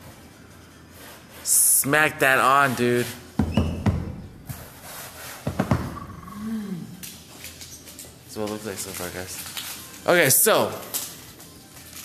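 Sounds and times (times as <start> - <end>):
person humming: 6.1 - 7.0.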